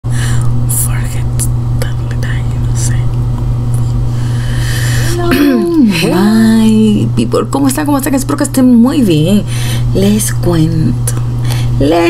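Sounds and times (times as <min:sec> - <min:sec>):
low electrical hum: 0:00.0 - 0:12.0
woman whispering: 0:00.7 - 0:03.2.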